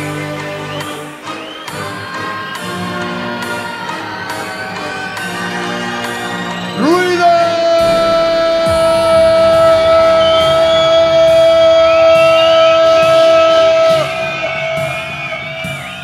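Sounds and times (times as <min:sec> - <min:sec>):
electronic dance music: 0:00.0 - 0:16.0
rising pitch sweep: 0:07.7 - 0:14.6.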